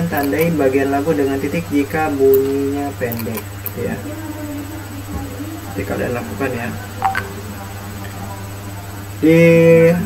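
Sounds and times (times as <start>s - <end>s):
short tonal blip: 7.0s - 7.3s.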